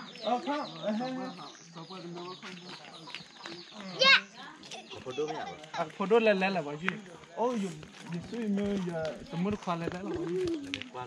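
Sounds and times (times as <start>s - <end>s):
children chattering and calling: 0.0s - 11.0s.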